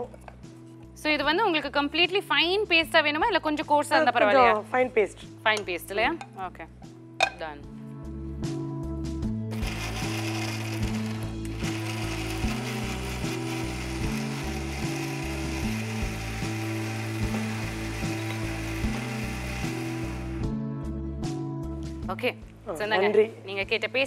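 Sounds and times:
background music with slow bass: 0.0s - 23.5s
mixer grinder running: 9.5s - 20.5s.

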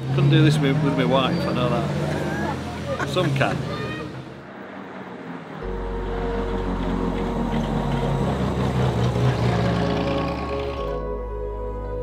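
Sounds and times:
car engine running: 5.6s - 11.0s
music: 5.6s - 12.0s.

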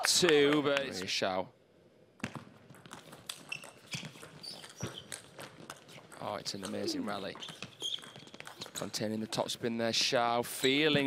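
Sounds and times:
shoe squeaks: 3.2s - 8.9s, 10.5s - 11.0s.

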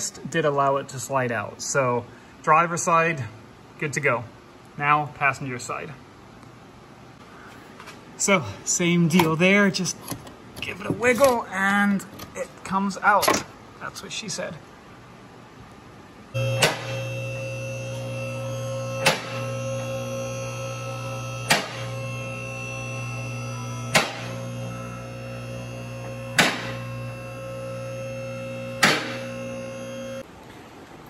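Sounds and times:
hydraulic power unit humming: 16.3s - 30.3s
sharp clicks of car lift: 16.6s - 17.0s, 19.0s - 19.4s, 21.4s - 21.9s, 23.9s - 24.4s, 26.3s - 26.8s, 28.8s - 29.3s.

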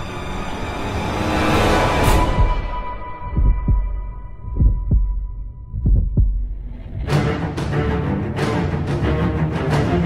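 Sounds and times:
heartbeat thumps: 2.3s - 7.2s.

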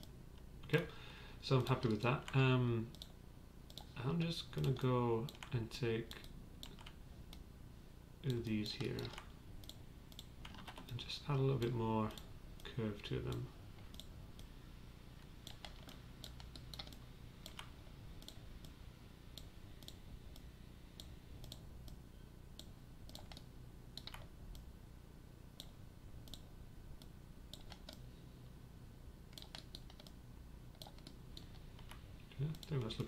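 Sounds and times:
low steady hum: 0.0s - 33.0s
mouse and keyboard clicks: 4.6s - 7.4s, 8.3s - 10.9s, 15.4s - 18.8s, 22.6s - 24.7s, 27.5s - 28.0s, 29.3s - 32.8s.

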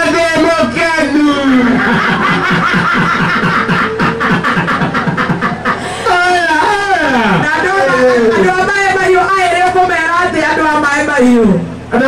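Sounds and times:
person laughing: 1.6s - 8.6s.

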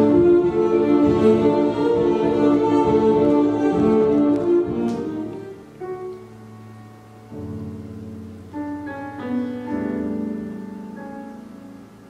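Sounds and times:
piano chords ringing: 0.0s - 12.0s.

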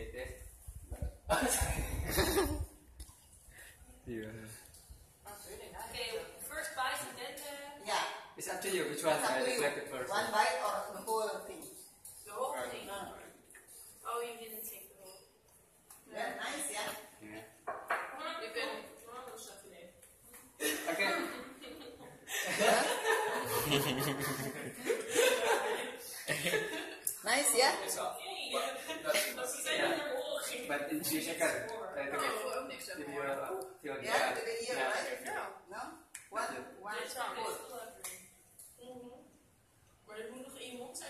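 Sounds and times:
people talking: 20.6s - 21.8s, 22.5s - 24.6s, 25.2s - 33.0s.

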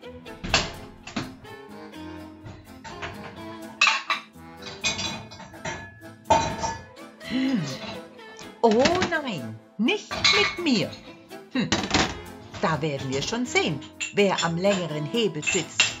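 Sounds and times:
background music: 0.0s - 16.0s
crockery clinking: 2.5s - 7.0s, 10.1s - 11.0s, 11.7s - 16.0s.

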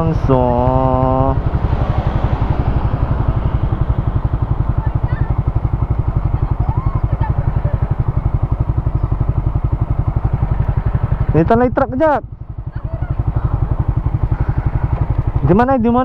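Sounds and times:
motorcycle engine idling: 0.0s - 16.0s.

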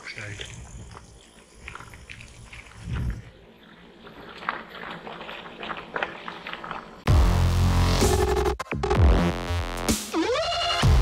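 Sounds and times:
bike tyres rolling on gravel: 0.0s - 7.1s
electronic music with heavy beat: 7.1s - 11.0s.

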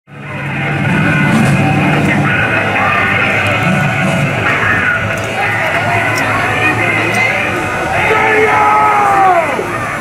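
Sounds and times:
race car engines droning: 0.1s - 10.0s.

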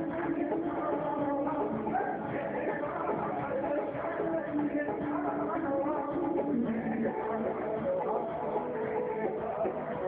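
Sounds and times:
guitar accompaniment: 0.0s - 10.0s
man singing into microphone: 0.0s - 10.0s.

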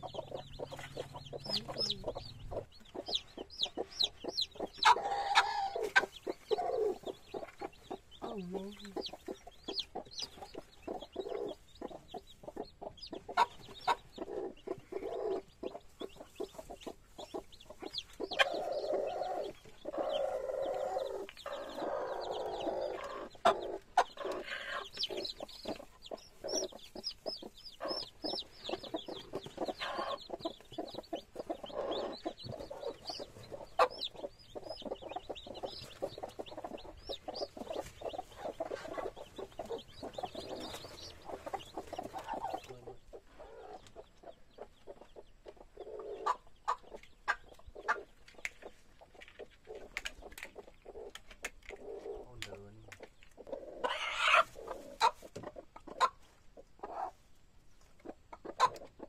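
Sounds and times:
chicks peeping: 0.0s - 59.0s
hen clucking: 0.0s - 59.0s.

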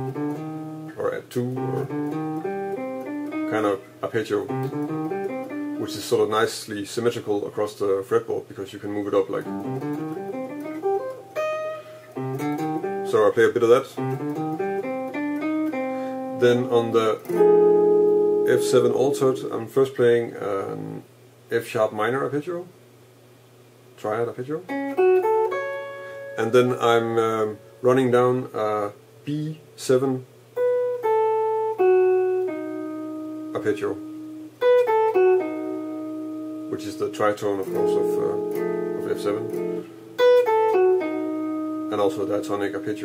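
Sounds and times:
electric guitar arpeggio: 0.0s - 0.9s, 1.5s - 6.1s, 9.3s - 13.3s, 14.0s - 19.5s, 24.7s - 27.7s, 30.6s - 43.0s.

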